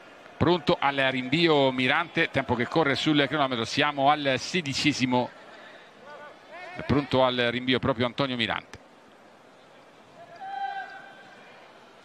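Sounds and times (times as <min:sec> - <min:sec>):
faint stadium ambience: 0:00.0 - 0:12.0.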